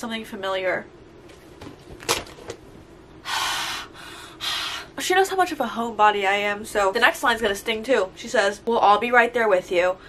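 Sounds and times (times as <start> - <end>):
woman sniffing: 3.2 - 4.9
woman breathing heavily: 3.2 - 5.0.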